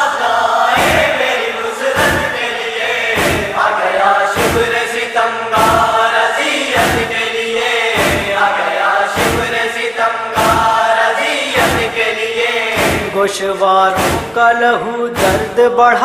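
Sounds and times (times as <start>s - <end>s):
group of voices chanting: 0.0s - 15.6s
chest-beating thuds: 0.7s - 9.8s, 10.4s - 10.9s, 11.5s - 13.2s, 13.9s - 14.6s, 15.2s - 15.6s.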